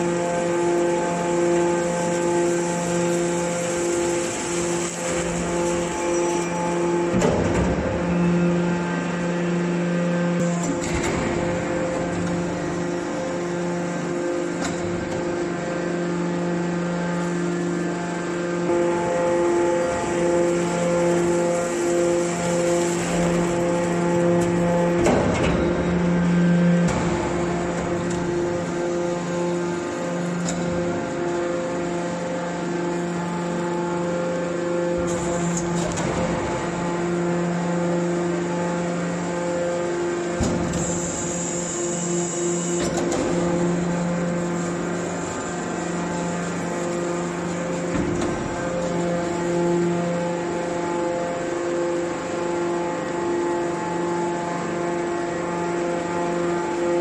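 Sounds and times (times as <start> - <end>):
hydraulic baler motor humming: 0.0 - 57.0.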